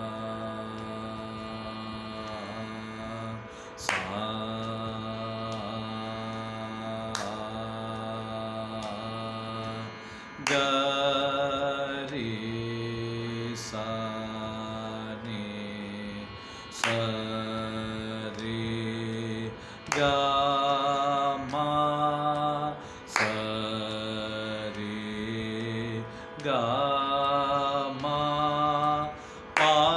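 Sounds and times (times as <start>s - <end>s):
man singing long held notes: 0.0s - 29.9s
steady low drone: 0.0s - 29.9s.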